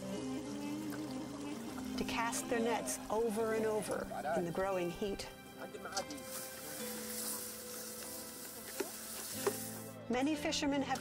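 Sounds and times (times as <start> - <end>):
steady insect-like buzz: 0.0 - 4.6.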